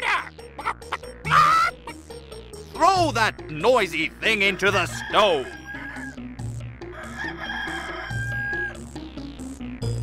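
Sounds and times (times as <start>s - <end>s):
light background music: 0.0s - 10.0s
cartoon rooster crowing: 4.6s - 6.2s, 6.9s - 8.8s.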